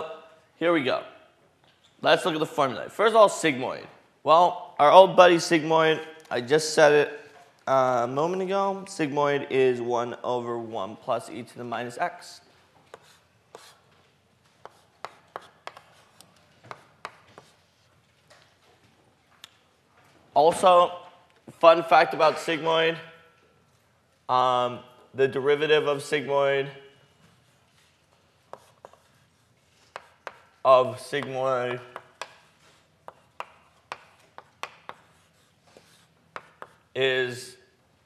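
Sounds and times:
chalk tapping on a blackboard: 12.9 - 13.8, 14.6 - 17.8, 28.4 - 36.9.

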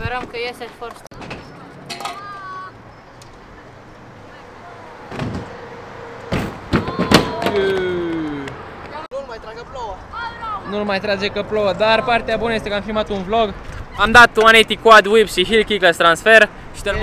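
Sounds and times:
person shouting excitedly: 6.8 - 8.5, 10.1 - 10.9.

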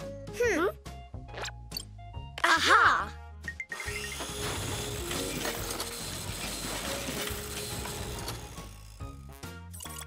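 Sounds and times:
cartoon machine grinding: 3.8 - 9.2.

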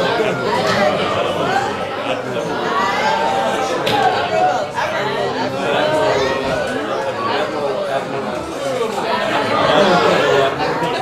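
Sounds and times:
babble of voices: 0.0 - 11.0.

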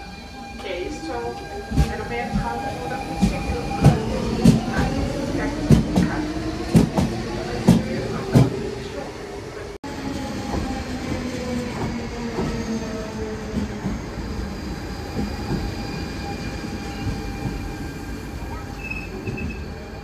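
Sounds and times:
train wheels clicking on track: 1.7 - 8.6, 10.4 - 17.8.

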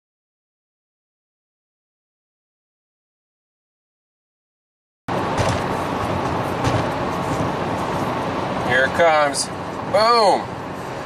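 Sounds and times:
road and engine noise in car: 5.1 - 11.0
man's voice: 8.7 - 10.5.

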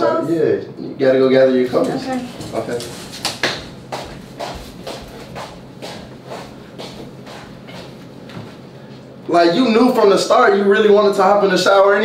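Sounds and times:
faint room hum: 0.0 - 12.0
soft footsteps walking: 1.8 - 9.3.

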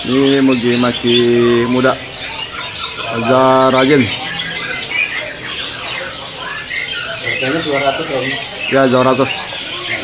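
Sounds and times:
songbirds chirping: 0.0 - 10.0.

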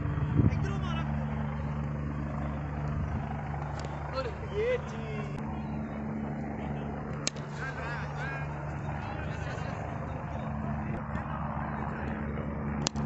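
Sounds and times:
low mechanical drone: 0.0 - 13.0
sharp crack: 7.1 - 7.7, 12.8 - 13.0.

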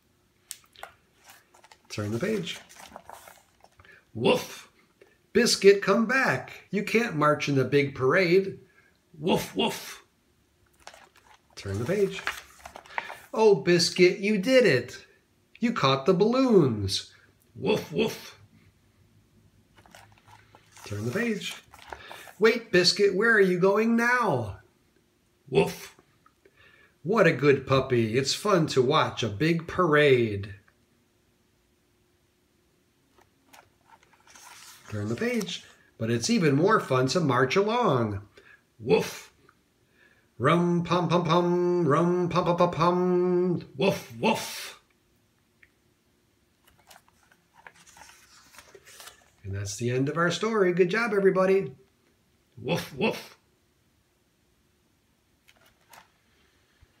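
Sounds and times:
paper page crinkling and clicking: 0.6 - 3.9, 10.7 - 13.4, 19.8 - 22.4, 33.1 - 35.8, 46.6 - 49.4, 55.4 - 56.2
man speaking: 1.9 - 3.0, 4.1 - 8.6, 9.2 - 10.1, 11.6 - 12.4, 13.3 - 18.4, 20.8 - 24.6, 25.5 - 26.0, 27.0 - 30.6, 34.9 - 39.4, 40.4 - 44.8, 49.4 - 51.8, 52.6 - 53.4.

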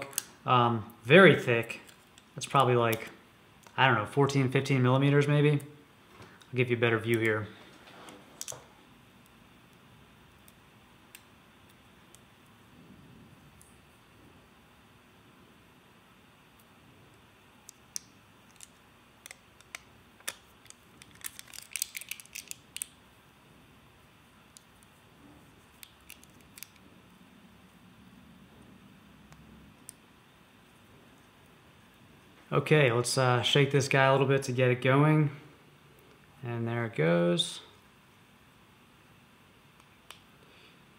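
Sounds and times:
plastic film crackling: 18.5 - 22.9.

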